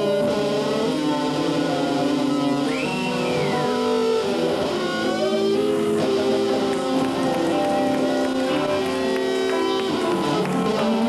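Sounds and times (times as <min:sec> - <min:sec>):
electric guitar long ringing notes: 0:00.0 - 0:11.0.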